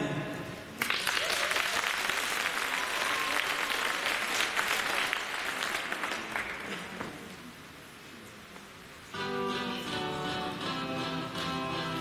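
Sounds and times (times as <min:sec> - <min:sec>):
audience applauding: 0:00.8 - 0:07.1.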